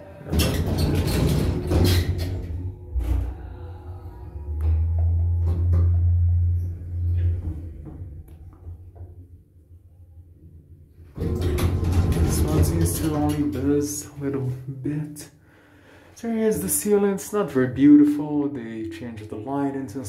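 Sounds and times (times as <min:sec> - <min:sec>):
elevator doors clunking: 0:00.0 - 0:09.2, 0:11.1 - 0:14.1
elevator drive humming: 0:00.1 - 0:09.3.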